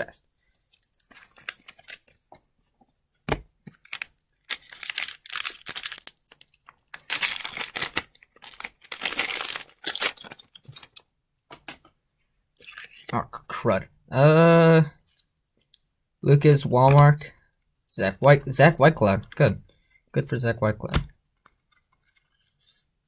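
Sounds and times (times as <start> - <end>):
card pack wrapper tearing: 3.7 - 11.0.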